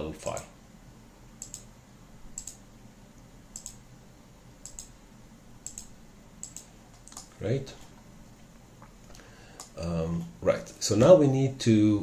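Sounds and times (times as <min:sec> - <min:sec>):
computer mouse clicking: 0:01.4 - 0:01.7, 0:02.3 - 0:02.6, 0:03.5 - 0:03.8, 0:04.6 - 0:05.0, 0:05.6 - 0:07.4, 0:09.6 - 0:09.8.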